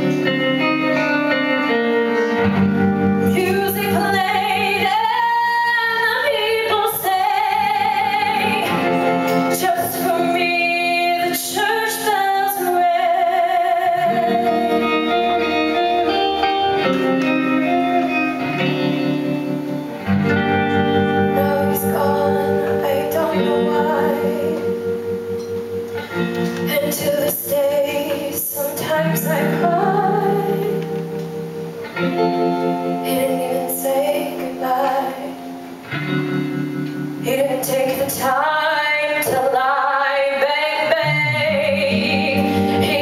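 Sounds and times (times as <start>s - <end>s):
live band music: 0.0s - 39.7s, 40.4s - 43.0s
guitar: 0.0s - 43.0s
woman singing: 3.2s - 16.4s, 21.0s - 25.5s, 26.3s - 31.2s, 32.8s - 35.8s, 37.2s - 43.0s.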